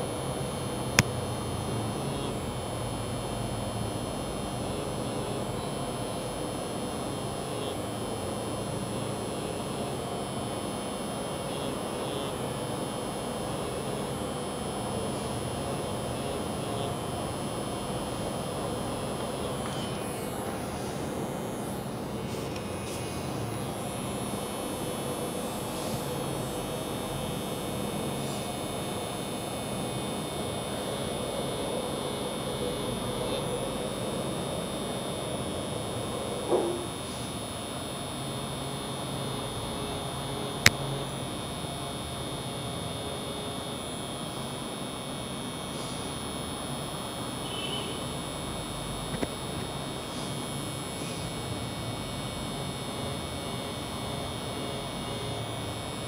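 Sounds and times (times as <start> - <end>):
tattoo pen machine buzzing: 0.0 - 56.0.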